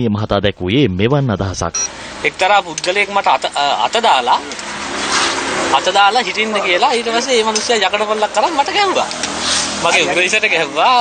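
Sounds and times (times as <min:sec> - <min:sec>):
man talking: 0:00.0 - 0:04.6, 0:05.7 - 0:09.1, 0:09.8 - 0:11.0
low car noise: 0:01.5 - 0:11.0.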